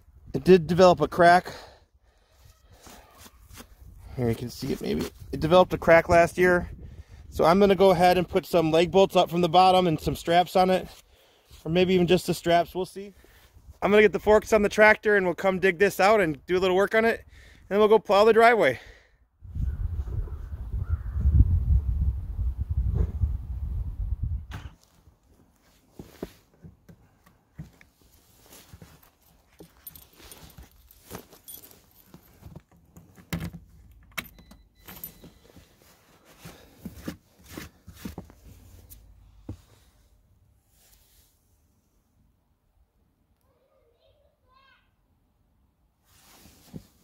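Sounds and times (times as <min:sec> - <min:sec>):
key ring jingling: 0:29.5 - 0:32.3, 0:34.2 - 0:35.5.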